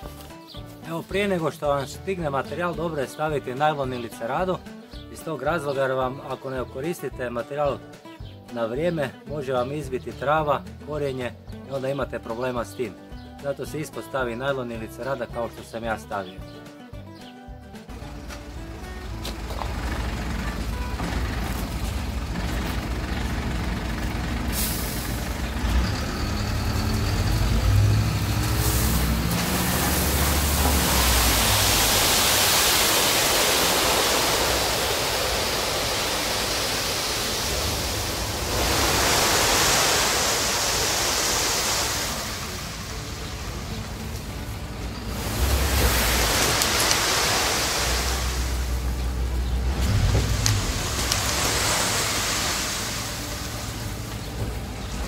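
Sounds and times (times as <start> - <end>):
diesel engine rumble: 17.9 - 55.0
gravel pouring onto tarp: 28.2 - 43.5, 45.1 - 48.8, 49.8 - 53.8.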